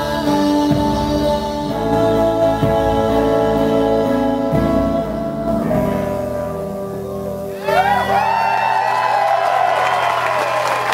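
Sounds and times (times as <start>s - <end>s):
audience cheering and whooping: 7.5s - 10.9s
people clapping: 7.8s - 10.9s.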